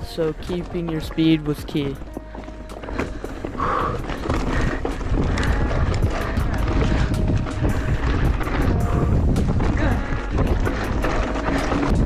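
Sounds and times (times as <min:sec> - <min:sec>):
background music: 0:00.0 - 0:12.0
mountain bike rattling over rocks: 0:00.0 - 0:12.0
wind rumble on microphone: 0:02.0 - 0:12.0.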